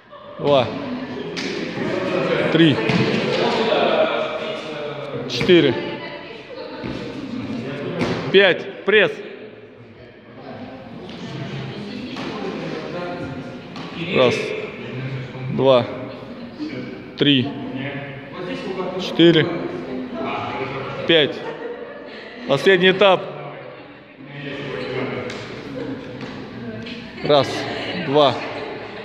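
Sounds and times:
indistinct background chatter: 0.0 - 29.0
people talking quietly: 0.0 - 29.0.

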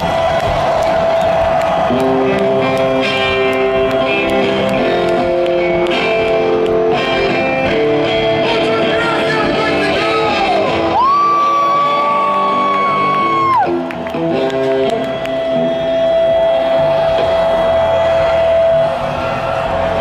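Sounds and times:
crowd whooping: 0.0 - 8.0, 8.6 - 20.0
rock band playing live: 0.0 - 20.0.

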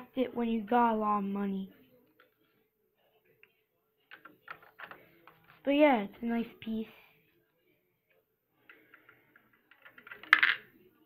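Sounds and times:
handling noises on plastic model: 4.1 - 5.7, 8.7 - 10.6.

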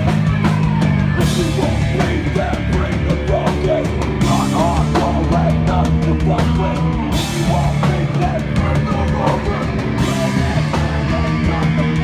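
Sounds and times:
hardcore punk band playing live: 0.0 - 12.0.

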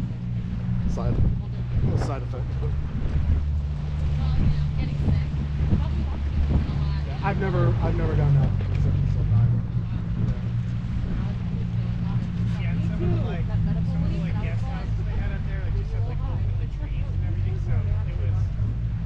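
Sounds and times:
outboard motor humming: 0.0 - 19.0
faint conversation: 0.1 - 19.0.

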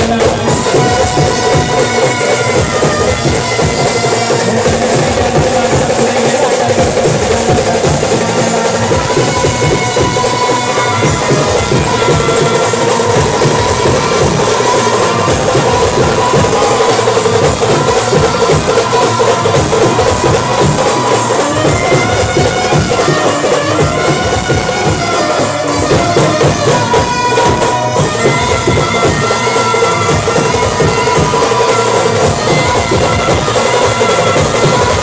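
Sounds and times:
fast drumming with sticks: 0.0 - 35.0
live band music over loudspeakers: 0.0 - 35.0.

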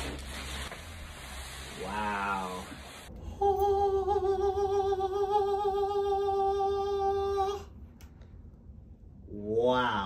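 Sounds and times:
person holding a long sung note: 1.8 - 7.7.

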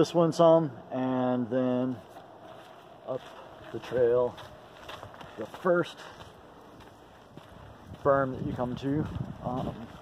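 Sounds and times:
faint wind on microphone: 6.7 - 10.0.

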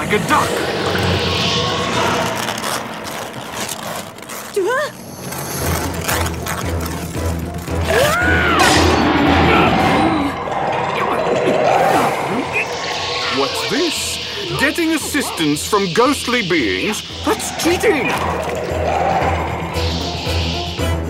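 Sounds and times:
dramatic background music: 0.0 - 21.0
pulsing low beat: 9.3 - 21.0.

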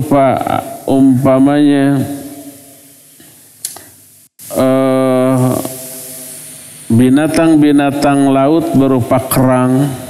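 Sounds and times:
low room hiss: 0.0 - 10.0
man's drawn-out hesitation sound: 4.4 - 5.7.

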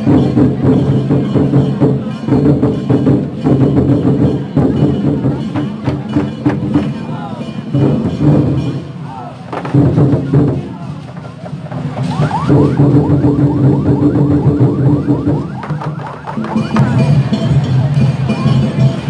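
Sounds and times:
barrel drums beaten fast: 0.0 - 19.0
crowd voices: 0.0 - 19.0
percussion: 0.0 - 19.0.

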